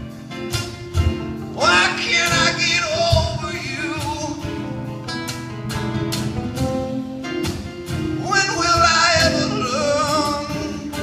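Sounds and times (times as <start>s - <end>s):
plucked guitar: 0.0s - 11.0s
person singing: 1.6s - 4.8s, 8.2s - 11.0s.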